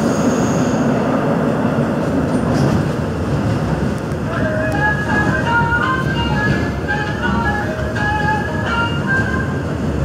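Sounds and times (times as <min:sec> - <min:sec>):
train car rumble: 0:00.0 - 0:10.0
train chime melody: 0:04.4 - 0:10.0.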